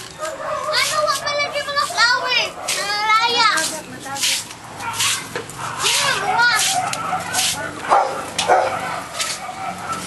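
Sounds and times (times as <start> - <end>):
young people calling out: 0.3 - 3.7, 4.8 - 8.4.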